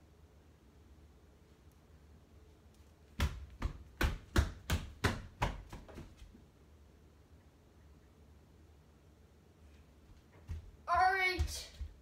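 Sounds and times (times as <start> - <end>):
child's footsteps on hardwood floor: 3.2 - 6.4, 10.0 - 12.0.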